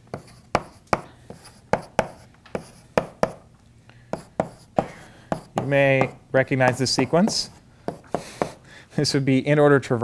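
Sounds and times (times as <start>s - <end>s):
chalk scraping on blackboard: 0.1s - 3.4s, 4.1s - 5.7s, 7.0s - 8.6s
chalk tapping on blackboard: 0.1s - 3.4s, 4.1s - 8.6s.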